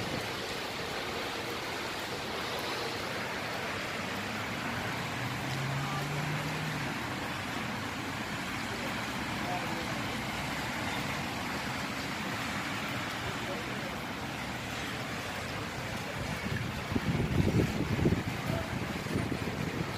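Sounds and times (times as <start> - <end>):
traffic hiss on wet street: 0.0 - 19.9
wind buffeting microphone: 15.8 - 19.9.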